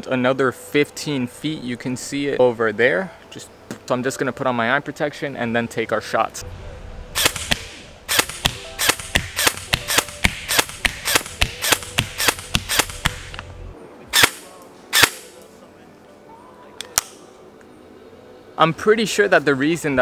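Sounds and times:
airsoft rifle shots: 7.2s - 13.4s, 14.1s - 15.4s.

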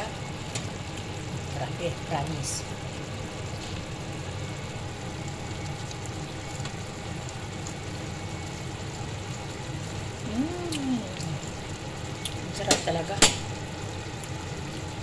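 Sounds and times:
food simmering in a frying pan: 0.0s - 15.0s.

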